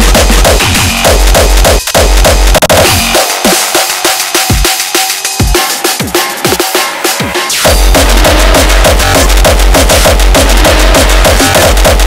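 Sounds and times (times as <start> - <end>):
industrial hardcore techno: 0.0 - 12.0.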